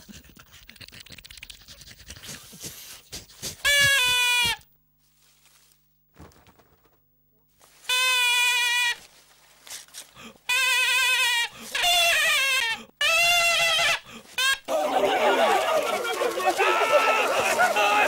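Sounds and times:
duck call bleating blasts: 3.7 - 4.6, 7.9 - 9.0, 10.5 - 14.7.

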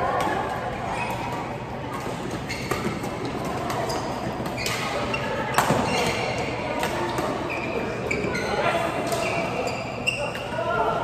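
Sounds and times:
rackets hitting shuttlecock: 1.0 - 7.4
shoes squeaking on floor: 2.1 - 10.6.

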